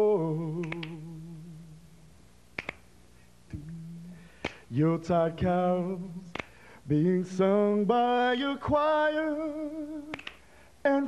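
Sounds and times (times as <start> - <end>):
a cappella singing: 0.0 - 1.8, 3.5 - 11.0
finger snaps: 0.4 - 1.2, 2.5 - 3.8, 4.4 - 4.7, 6.2 - 6.6, 10.0 - 10.6.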